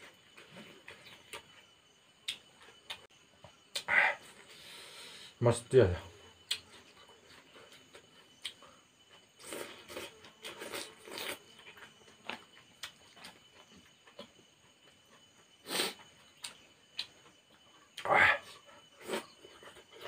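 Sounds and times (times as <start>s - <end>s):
chewing: 6.4s - 18.0s.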